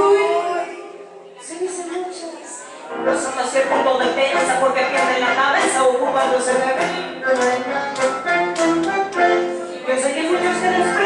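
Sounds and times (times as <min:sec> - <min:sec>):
instrumental accompaniment: 0:02.9 - 0:11.0
woman singing a tango: 0:03.1 - 0:11.0.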